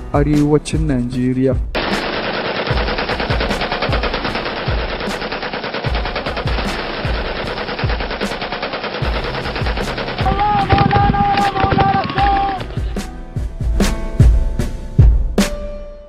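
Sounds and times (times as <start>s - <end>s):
automatic gunfire: 1.8s - 13.0s
deep thuds: 9.0s - 14.5s.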